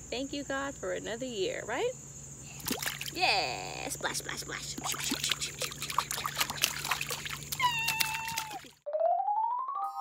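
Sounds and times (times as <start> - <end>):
feet splashing in pool water: 2.6 - 3.2, 4.7 - 8.8.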